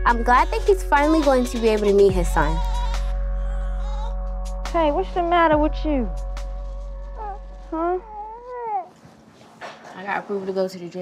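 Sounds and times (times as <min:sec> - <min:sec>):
baby whining: 0:00.1 - 0:04.2, 0:07.1 - 0:09.0.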